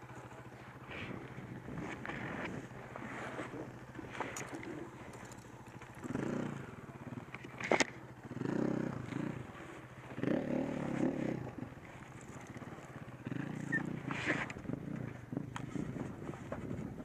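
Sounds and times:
motorcycle engine revving: 0.0 - 17.0.

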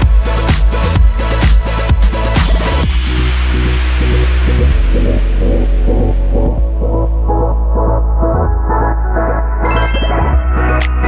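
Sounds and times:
deep bass drone: 0.0 - 11.0
pulsing synth beat: 0.0 - 11.0.

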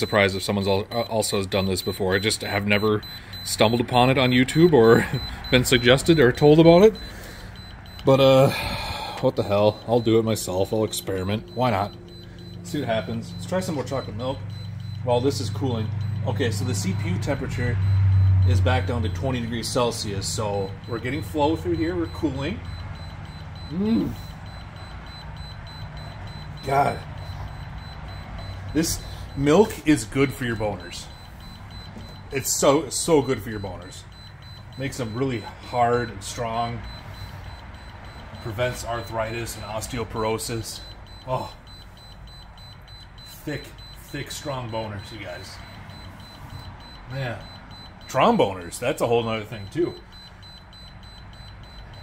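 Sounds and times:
computer and cooling pump hum: 0.0 - 19.0
faint fast ticking: 0.0 - 48.5.

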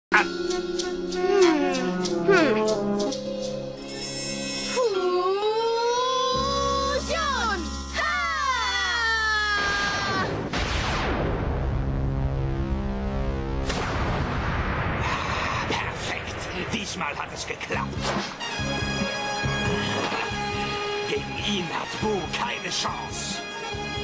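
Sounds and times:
cartoon music: 0.1 - 3.2.

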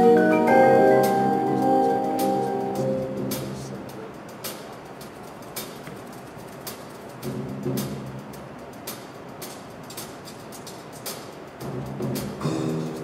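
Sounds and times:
sharp percussion clicks: 0.0 - 13.0.

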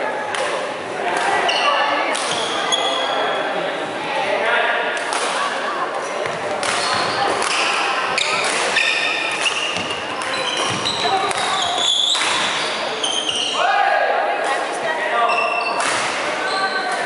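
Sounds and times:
shoes squeaking on floor: 1.4 - 3.5, 6.0 - 13.6, 15.2 - 17.0
racket hitting shuttlecock: 5.0 - 5.4, 6.2 - 12.7.

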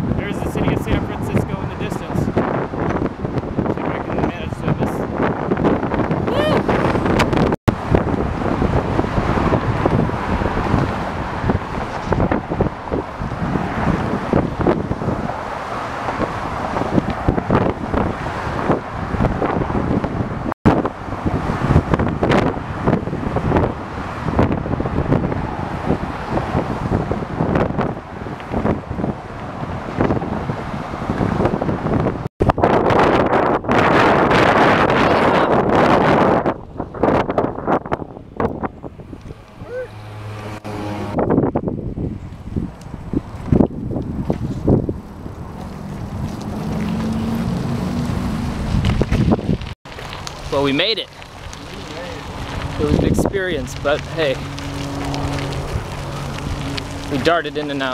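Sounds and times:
wind buffeting microphone: 0.0 - 57.9
car traffic passing: 6.4 - 35.0, 35.6 - 57.9.

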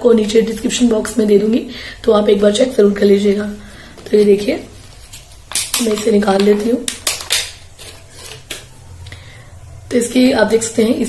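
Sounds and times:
plastic packaging crinkling: 4.7 - 8.6.

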